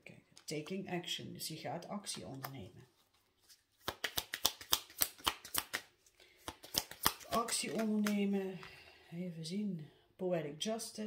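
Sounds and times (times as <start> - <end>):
cards being shuffled: 1.9 - 8.4.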